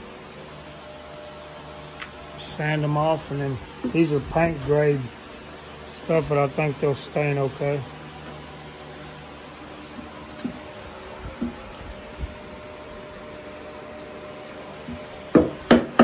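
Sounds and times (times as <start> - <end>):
shop fan humming: 0.0 - 16.0
sharp knocks of wood on wood: 15.3 - 16.0.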